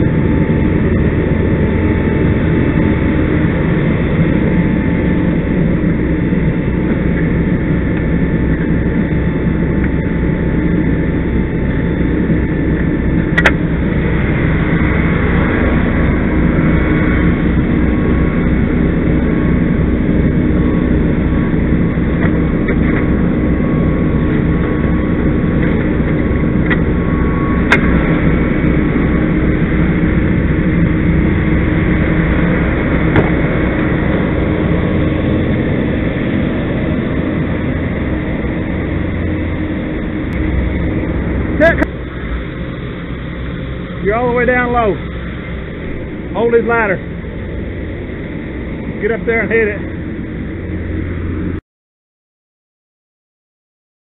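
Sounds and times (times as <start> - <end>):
fire truck engine running: 0.0 - 51.6
sharp knocks: 33.1 - 33.4.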